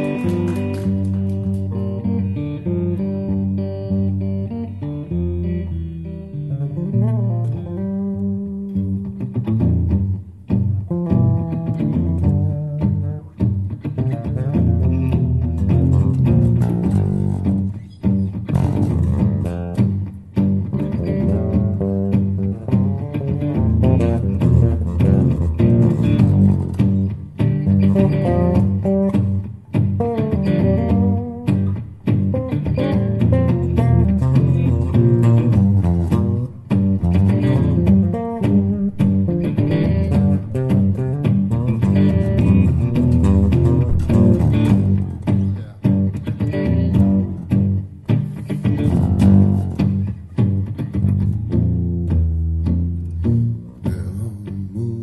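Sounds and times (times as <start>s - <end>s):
electric bass: 0.0s - 55.0s
electric guitar playing: 0.0s - 55.0s.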